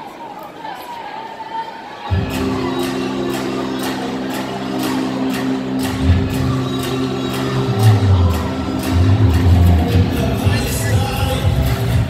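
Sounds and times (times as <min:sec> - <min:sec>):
heavy bass line: 0:02.1 - 0:12.0
intro music over pa system: 0:02.1 - 0:12.0.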